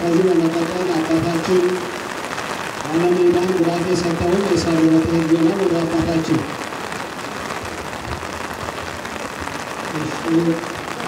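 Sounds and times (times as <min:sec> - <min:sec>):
heavy rain: 0:00.0 - 0:11.0.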